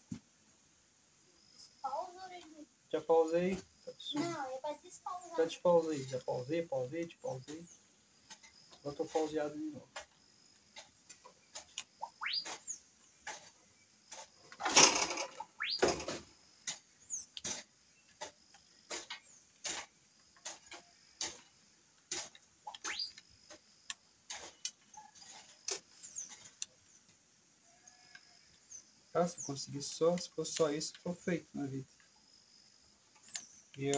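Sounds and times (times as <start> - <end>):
scraping rustle: 7.2 - 23.6, 24.2 - 27.2.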